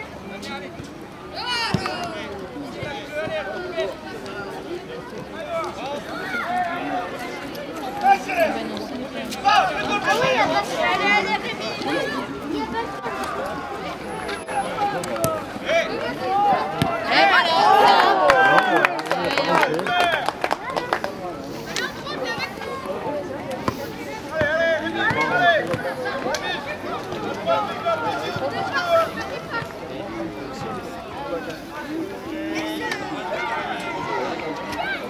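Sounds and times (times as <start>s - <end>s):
people calling and talking: 0.0s - 35.0s
children shouting: 6.0s - 7.1s, 32.4s - 35.0s.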